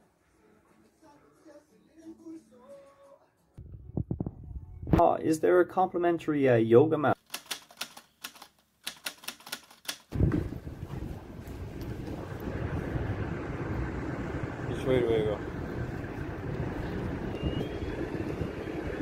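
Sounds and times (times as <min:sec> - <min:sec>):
sharp irregular clicks: 0:07.2 - 0:10.1
ground vehicles and engines rumbling: 0:10.2 - 0:19.0.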